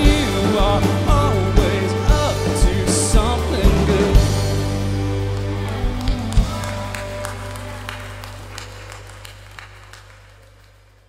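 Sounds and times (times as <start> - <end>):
people clapping: 5.0 - 11.0.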